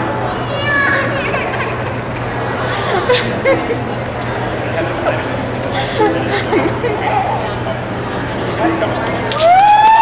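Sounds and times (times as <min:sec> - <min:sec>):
crowd noise: 0:00.0 - 0:10.0
excited high-pitched voices: 0:00.2 - 0:02.2.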